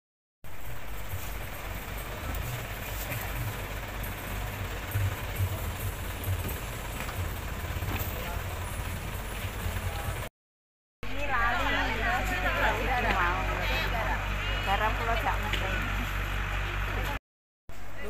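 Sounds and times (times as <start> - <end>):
low street rumble: 0.4 - 10.3, 11.0 - 18.0.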